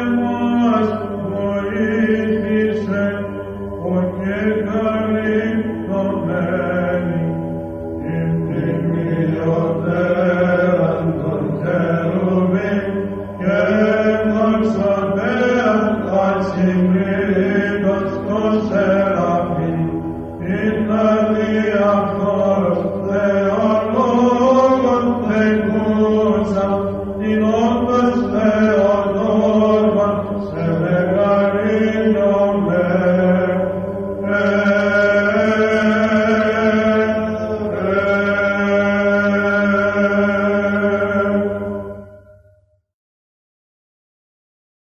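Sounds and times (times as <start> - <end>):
low held vocal drone: 0.0 - 42.4
chanted sung melody: 0.0 - 42.8.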